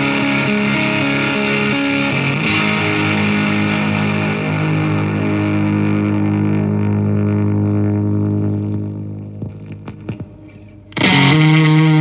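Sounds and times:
fuzz electric guitar drone: 0:00.0 - 0:12.0.

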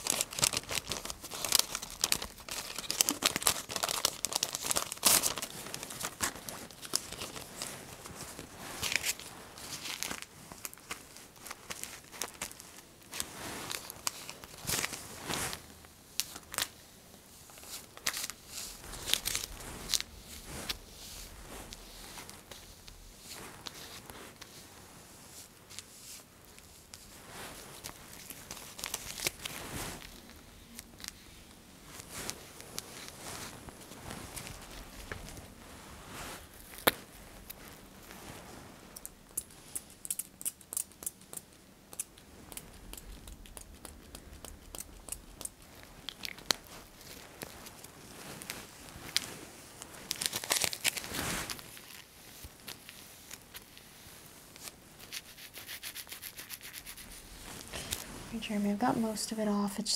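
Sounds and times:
light crinkles and clicks: 0:00.0 - 0:16.8, 0:25.4 - 0:35.6, 0:36.5 - 0:55.2
rubbing skin: 0:42.4 - 0:58.3.

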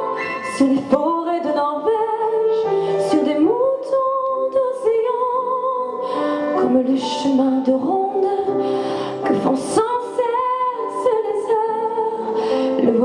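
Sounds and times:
woman singing with vibrato: 0:00.0 - 0:08.6, 0:09.2 - 0:13.0
pianos playing: 0:00.0 - 0:13.0.

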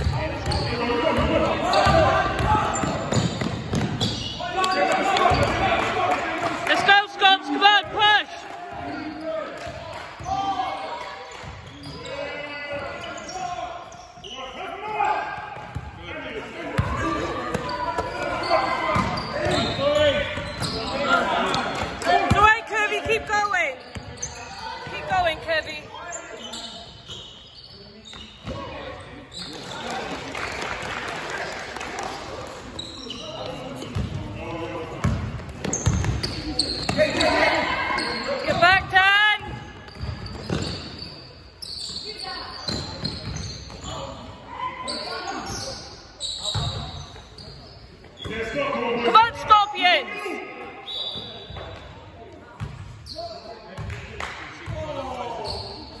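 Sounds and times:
shoes squeaking: 0:00.0 - 0:05.6, 0:17.4 - 0:29.8, 0:32.6 - 0:35.0, 0:35.6 - 0:44.2.

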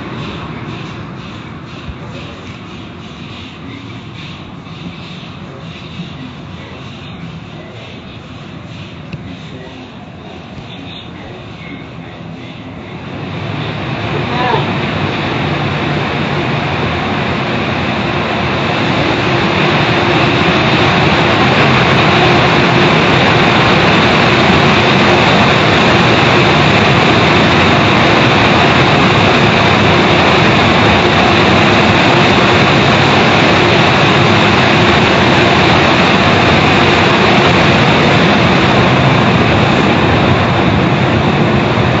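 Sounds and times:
car wash machinery rushing: 0:00.0 - 0:42.0.

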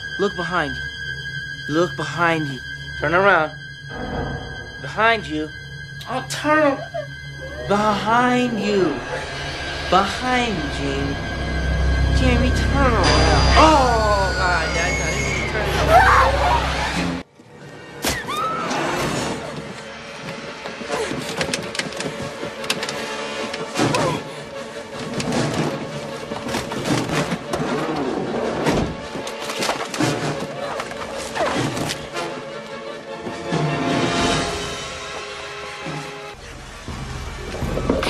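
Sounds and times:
tense horror film score: 0:00.0 - 0:38.0.

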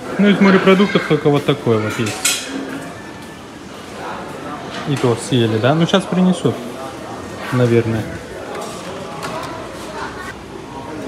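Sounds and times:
indistinct background voices: 0:02.5 - 0:11.0.

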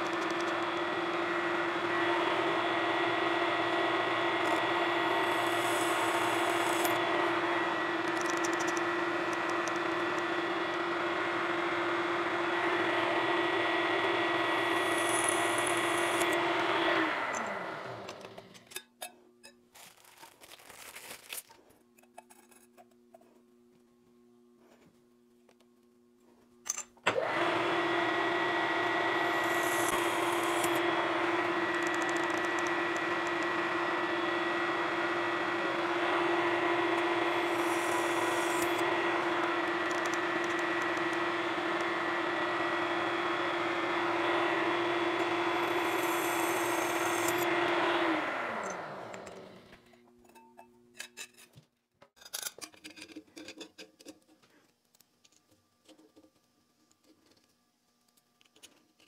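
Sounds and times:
drill bit cutting metal: 0:00.0 - 0:11.1, 0:14.0 - 0:18.2, 0:27.1 - 0:49.4
milling machine motor whine: 0:00.0 - 0:18.7, 0:27.1 - 0:49.9.

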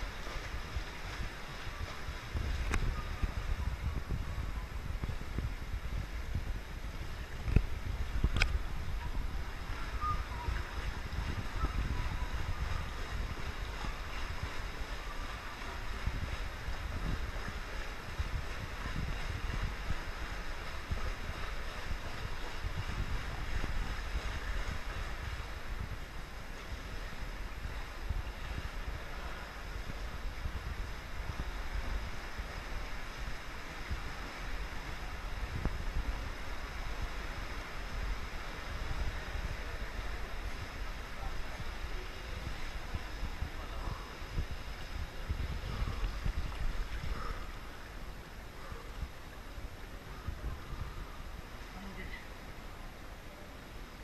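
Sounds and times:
microphone handling noise: 0:00.0 - 0:14.5, 0:34.9 - 0:37.1, 0:42.3 - 0:47.8
wind on microphone: 0:00.0 - 0:54.0
water lapping in pool gutter: 0:07.1 - 0:53.6.

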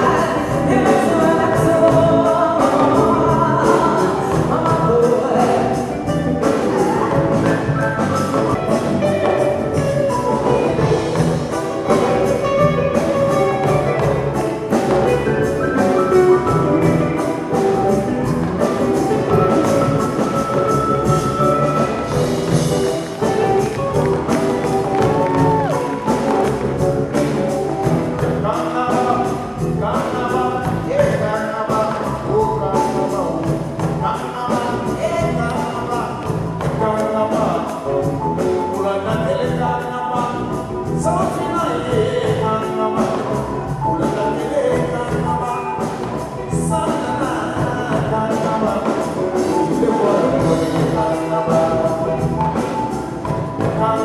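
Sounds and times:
sung vocals: 0:00.0 - 0:26.6, 0:28.0 - 0:54.0
live band with electric guitars: 0:00.0 - 0:54.0.

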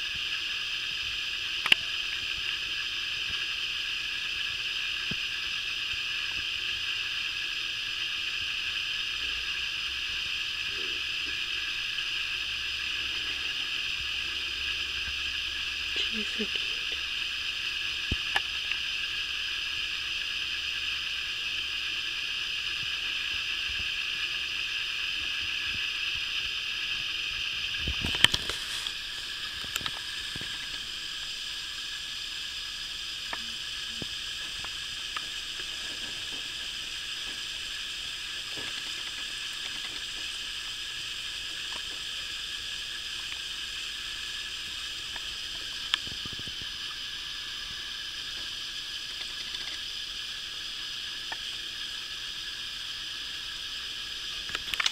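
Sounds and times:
background hiss with whine: 0:00.0 - 0:54.9
faint clicks: 0:01.6 - 0:02.3, 0:54.4 - 0:54.9.

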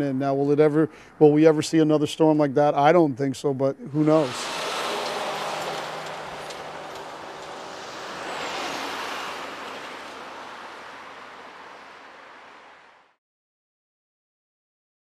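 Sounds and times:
vehicles driving past: 0:03.9 - 0:13.2.

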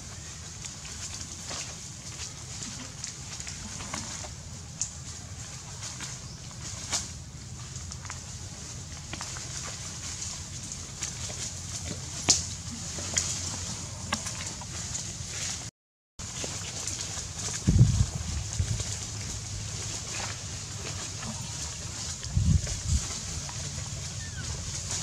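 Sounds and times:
rustling of grass and leaves: 0:00.0 - 0:25.0.

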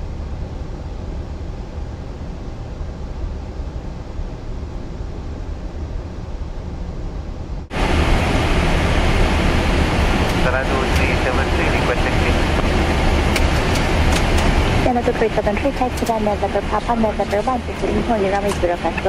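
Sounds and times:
cockpit air rush and hum: 0:00.0 - 0:19.0.

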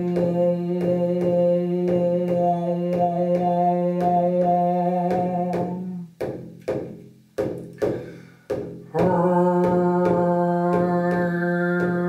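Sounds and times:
hand frame drum strikes: 0:00.0 - 0:12.0.

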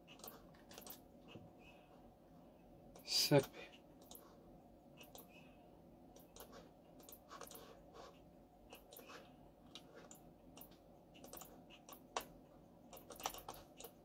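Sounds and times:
keyboard and mouse clicks: 0:00.0 - 0:01.1, 0:04.0 - 0:04.2, 0:05.0 - 0:05.3, 0:06.1 - 0:07.6, 0:09.7 - 0:14.0.

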